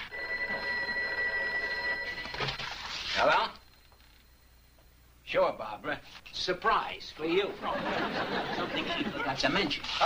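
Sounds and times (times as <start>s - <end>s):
telephone bell ringing: 0.0s - 2.6s.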